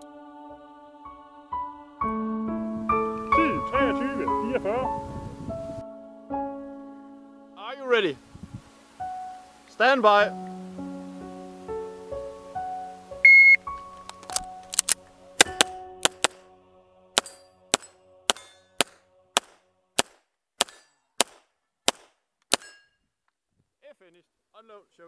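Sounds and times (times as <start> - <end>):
soft instrumental music: 0.0 - 19.0
shot timer beep: 13.3 - 13.6
pistol shots: 17.2 - 22.8.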